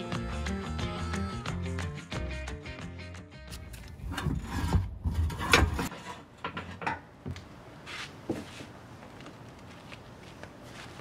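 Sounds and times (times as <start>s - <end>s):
metal scraping: 3.6s - 7.0s.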